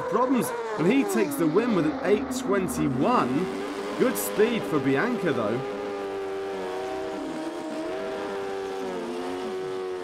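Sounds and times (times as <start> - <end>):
motorcycle engine at high revs: 0.0 - 10.0.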